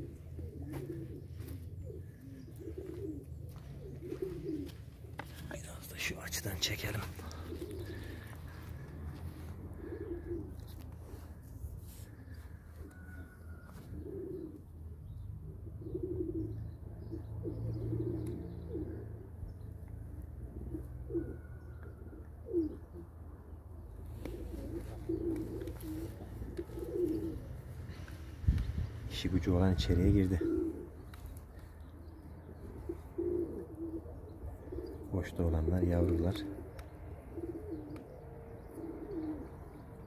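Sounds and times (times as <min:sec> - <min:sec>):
pigeons cooing: 0:00.0 - 0:40.0.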